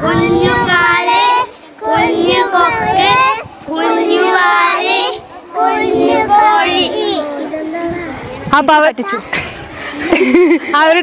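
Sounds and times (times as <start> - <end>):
children singing together: 0.0 - 7.6.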